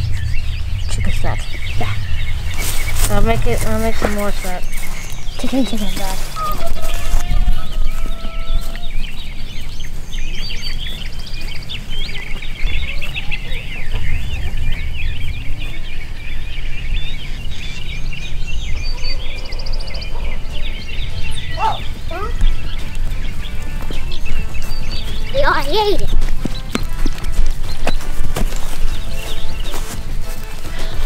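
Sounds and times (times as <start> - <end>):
steady low rumble: 0.0 - 19.0, 20.4 - 31.0
bird trills: 0.0 - 31.0
birds chirping and chattering: 0.0 - 31.0.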